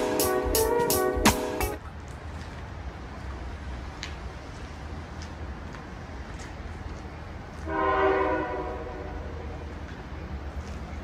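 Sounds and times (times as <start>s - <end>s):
locomotive air horn blast: 0.0s - 1.7s, 7.6s - 9.5s.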